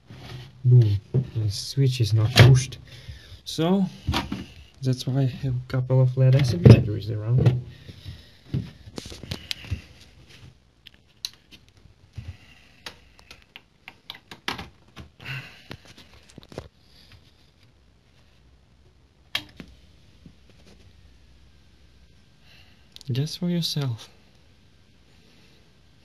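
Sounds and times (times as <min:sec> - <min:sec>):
cables and plastic parts handled: 0:07.4 - 0:18.4.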